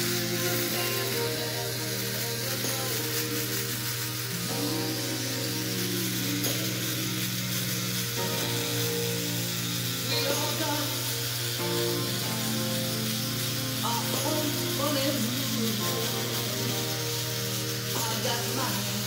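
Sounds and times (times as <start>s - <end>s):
pop-soul song with male singer: 0.0s - 8.8s, 9.8s - 13.0s, 13.6s - 19.0s
electric shaver buzzing: 0.0s - 19.0s.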